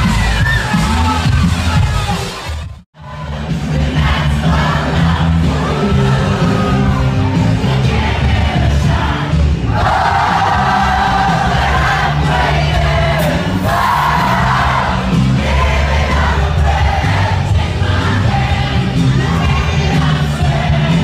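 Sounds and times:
loud dance music with heavy bass: 0:00.0 - 0:21.0
crowd singing along: 0:03.0 - 0:21.0.

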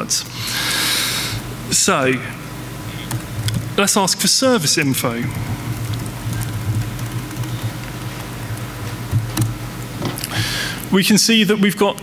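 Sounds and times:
steady low hum: 0:00.0 - 0:12.0
laptop keystrokes: 0:05.8 - 0:09.6.

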